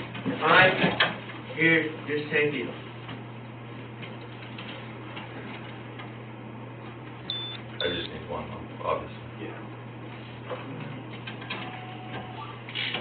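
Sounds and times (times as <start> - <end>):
steady low hum: 0.0 - 11.5
short high-pitched beeps: 7.3 - 8.1.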